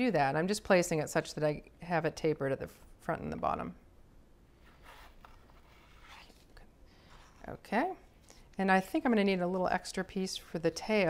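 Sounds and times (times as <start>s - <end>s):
soft handling sounds: 4.5s - 8.6s.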